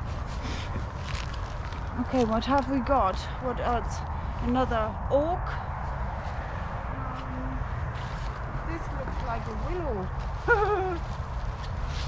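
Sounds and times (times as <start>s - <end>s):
clothing rustling and handling: 0.0s - 3.0s
wind buffeting microphone: 0.0s - 12.0s.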